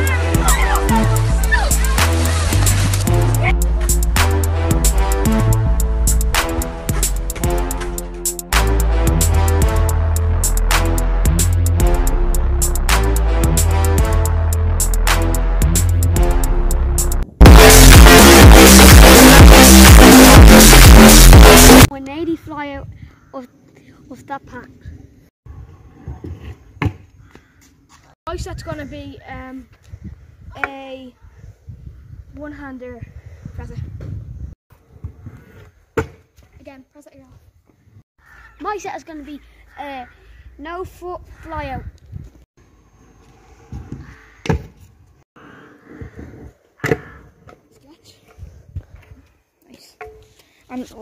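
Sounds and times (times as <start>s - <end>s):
scooter wheels rolling on concrete: 0.6s - 3.1s.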